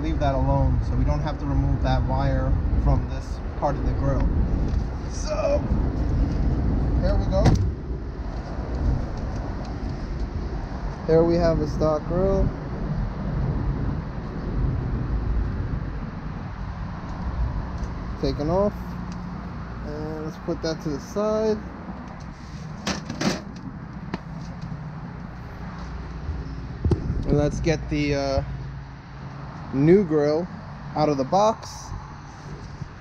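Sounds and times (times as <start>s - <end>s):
low outdoor rumble: 0.0s - 33.0s.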